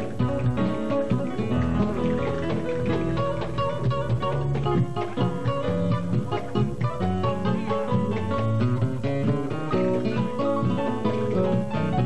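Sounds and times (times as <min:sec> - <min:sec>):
classical guitars playing: 0:00.0 - 0:12.0
steady bass line: 0:00.0 - 0:12.0.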